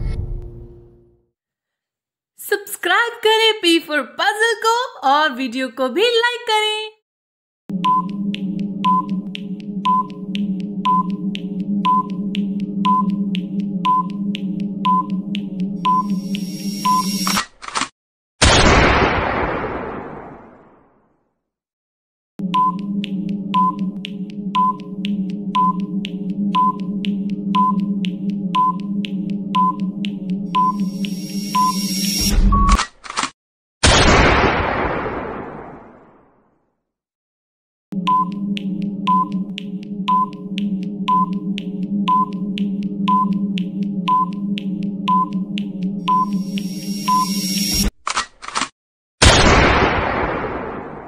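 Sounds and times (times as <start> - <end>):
timer clicks: 7.7 - 17.4, 22.4 - 32.8, 38.0 - 47.3
short electronic beeps: 15.9 - 17.4, 30.6 - 32.8, 46.1 - 47.8.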